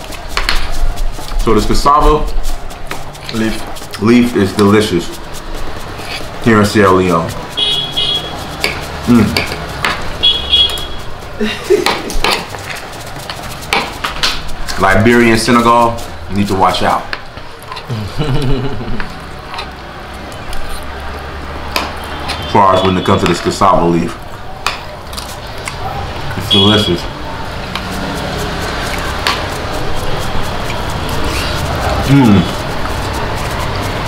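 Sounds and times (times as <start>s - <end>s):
person murmuring mm: 17.9s - 19.0s, 31.9s - 32.6s.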